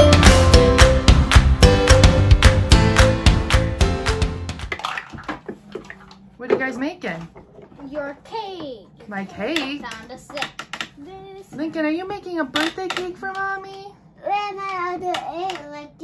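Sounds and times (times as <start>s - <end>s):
guitar intro music: 0.0s - 4.7s.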